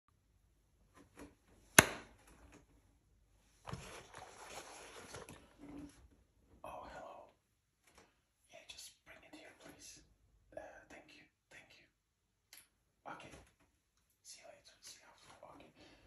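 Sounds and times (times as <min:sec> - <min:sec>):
soft whispering: 0:06.6 - 0:07.6, 0:08.4 - 0:12.1, 0:13.0 - 0:16.0.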